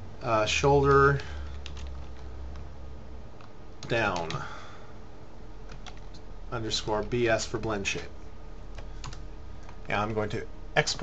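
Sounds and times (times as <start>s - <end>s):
low steady hum: 0.0s - 11.0s
keyboard typing: 1.5s - 2.7s, 3.4s - 4.4s, 5.7s - 6.2s, 8.7s - 9.9s.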